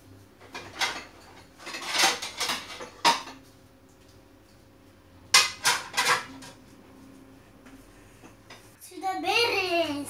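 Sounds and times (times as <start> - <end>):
plates clattering: 0.4 - 3.4, 5.3 - 6.6.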